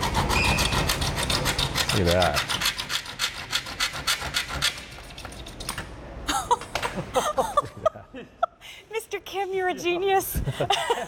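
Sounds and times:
hand saw rasping strokes: 0:00.0 - 0:05.5.

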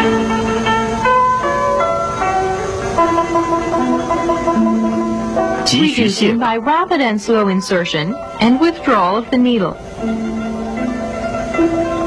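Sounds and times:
slow instrumental melody: 0:00.0 - 0:12.0.

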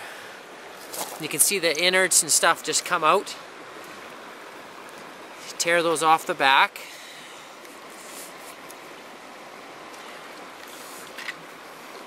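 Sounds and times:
stream water rushing: 0:00.0 - 0:12.0
soft rustle: 0:07.6 - 0:08.9.

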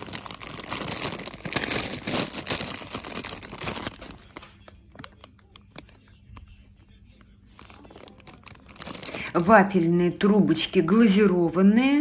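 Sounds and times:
plastic bag crinkling: 0:00.0 - 0:06.1, 0:07.5 - 0:09.9.

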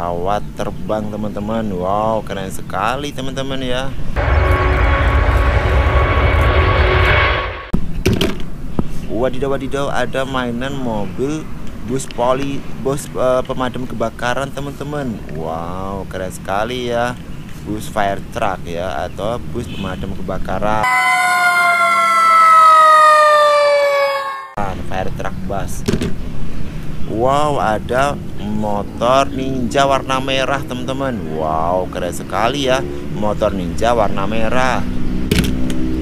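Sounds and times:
jet engines roaring: 0:04.2 - 0:07.8
fire engine siren wailing: 0:20.8 - 0:24.6.

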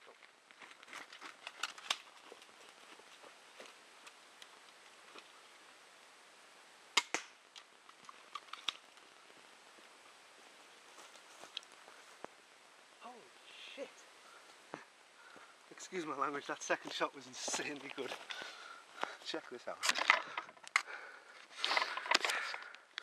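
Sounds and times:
clicks and rustling: 0:00.6 - 0:02.5, 0:07.0 - 0:09.1, 0:19.8 - 0:23.0
crossbow firing crack: 0:06.9 - 0:07.7.

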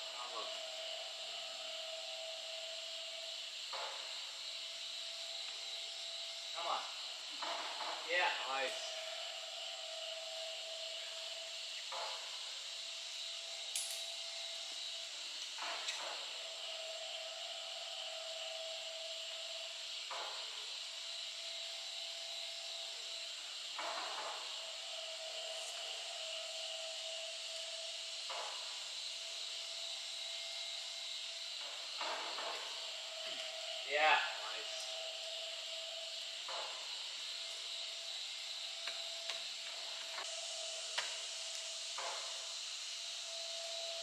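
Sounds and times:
insects droning: 0:00.0 - 0:44.0.

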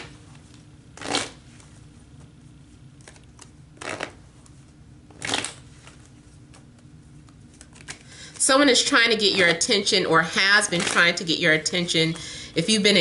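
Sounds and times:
card deck shuffled by hand: 0:03.0 - 0:04.5, 0:05.1 - 0:08.1.

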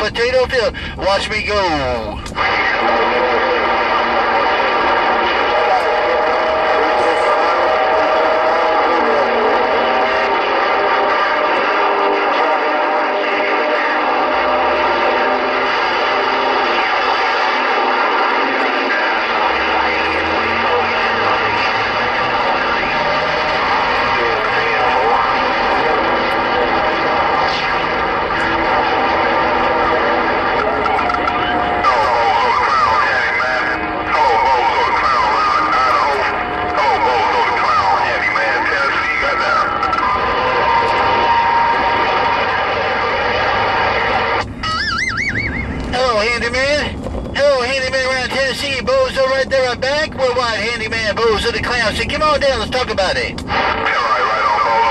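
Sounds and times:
garbled radio voices: 0:00.0 - 0:54.9
steady whistling tones: 0:00.0 - 0:54.9.

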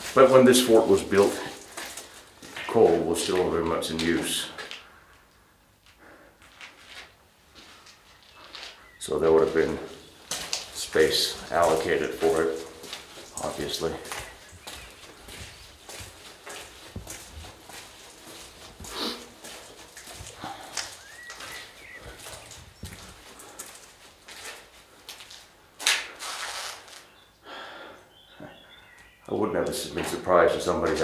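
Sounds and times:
footsteps on gritty stone floor: 0:00.0 - 0:05.2, 0:05.8 - 0:27.2, 0:29.0 - 0:31.0
shoe scuff: 0:14.8 - 0:20.4.

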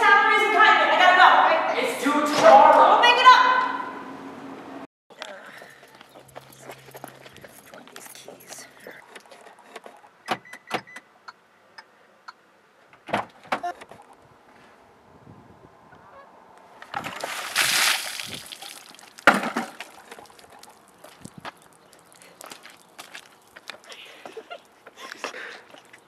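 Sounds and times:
woman's voice: 0:07.5 - 0:09.0.

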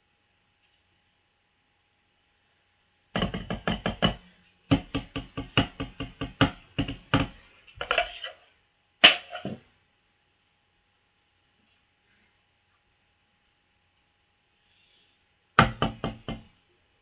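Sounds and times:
drumsticks tapping practice pads: 0:03.2 - 0:08.0.

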